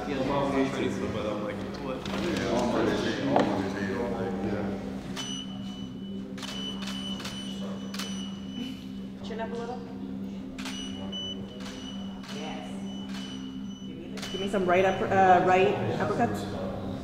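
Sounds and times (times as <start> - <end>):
camera shutter clicking: 6.4 - 8.2.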